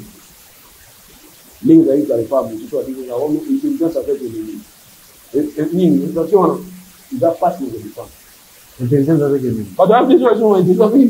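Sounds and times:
man speaking: 0:01.6 - 0:04.6, 0:05.4 - 0:08.1, 0:08.8 - 0:11.0.

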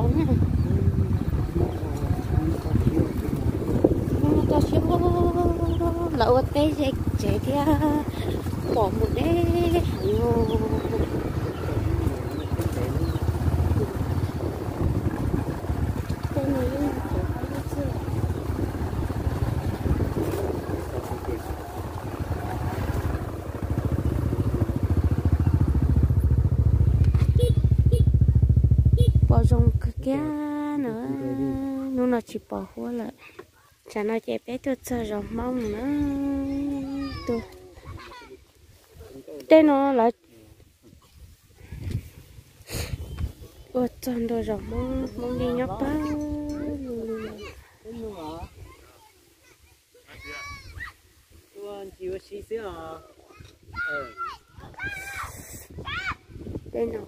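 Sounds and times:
person talking in sing-song tones: 0:04.2 - 0:08.1, 0:08.7 - 0:11.7, 0:29.3 - 0:32.1.

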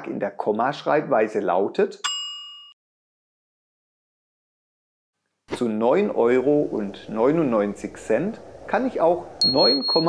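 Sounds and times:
bright chime ding: 0:09.4 - 0:10.0.

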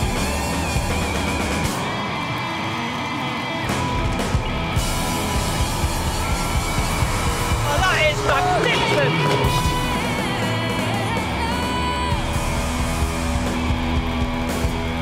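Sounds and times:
audience cheering and whooping: 0:00.0 - 0:15.0
live rock band playing: 0:00.0 - 0:15.0.

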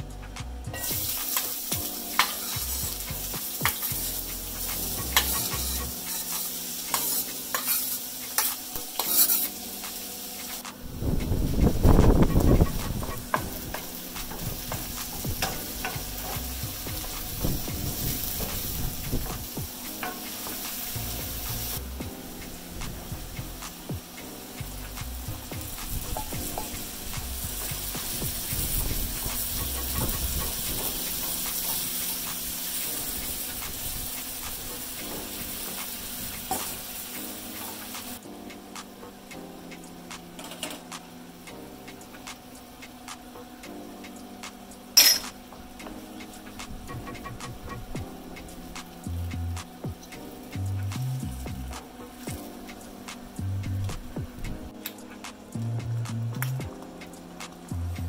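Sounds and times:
food sizzling in a pan: 0:00.7 - 0:58.0
utensil scraping a pan: 0:03.6 - 0:09.6.

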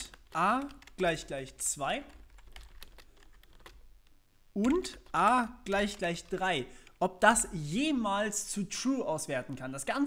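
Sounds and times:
typing on computer keyboard: 0:00.0 - 0:01.2, 0:02.0 - 0:03.8, 0:04.6 - 0:07.0.

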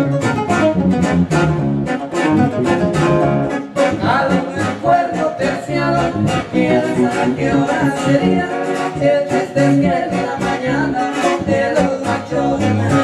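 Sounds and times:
live band music: 0:00.0 - 0:13.0
strummed guitars: 0:00.0 - 0:13.0
person singing: 0:03.7 - 0:13.0.

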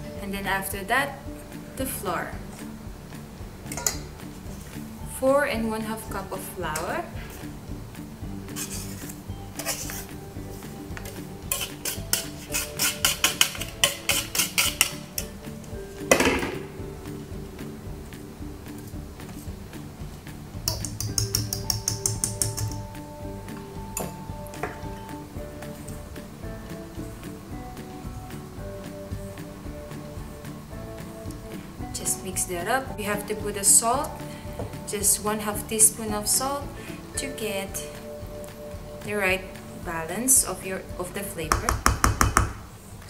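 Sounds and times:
background music: 0:00.0 - 0:43.0
whisk clicking against metal bowl: 0:11.0 - 0:15.3, 0:20.6 - 0:22.8.

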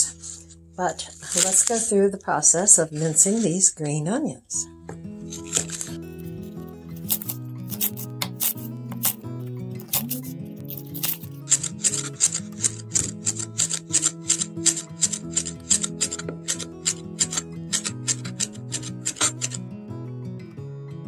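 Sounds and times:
background music: 0:04.0 - 0:21.0.

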